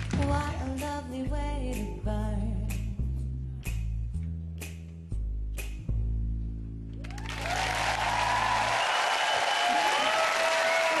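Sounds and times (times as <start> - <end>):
audience applauding and cheering: 7.0 - 11.0.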